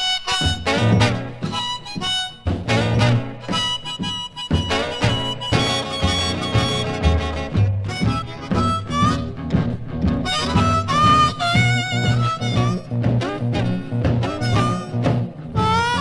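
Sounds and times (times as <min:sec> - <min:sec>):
blues harmonica: 0:00.0 - 0:16.0
drums: 0:00.0 - 0:16.0
guitars: 0:00.0 - 0:16.0
upright bass: 0:00.4 - 0:01.7, 0:02.5 - 0:16.0.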